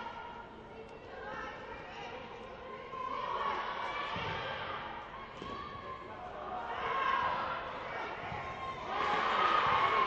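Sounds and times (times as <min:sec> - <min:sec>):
voices calling out in echoing hall: 0:00.0 - 0:10.0.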